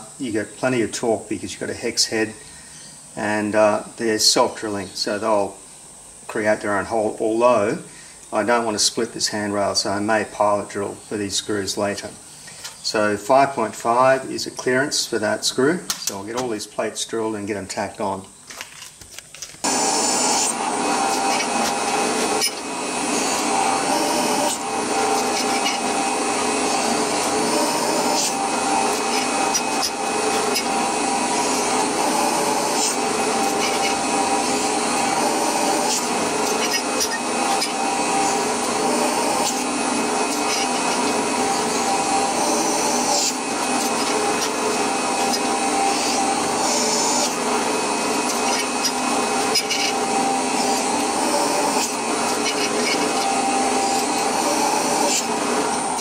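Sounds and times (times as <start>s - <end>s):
drill press motor whine: 19.6s - 56.0s.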